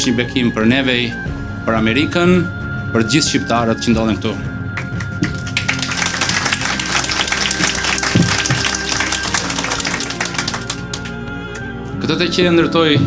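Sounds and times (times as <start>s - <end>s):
background music: 0.0s - 13.0s
audience applauding: 4.8s - 11.2s.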